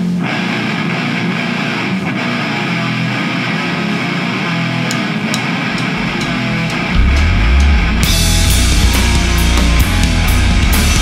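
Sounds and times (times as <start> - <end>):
electric guitar: 0.0 - 11.0
live rock band playing: 0.3 - 11.0
sharp drum or cymbal hits: 5.2 - 11.0.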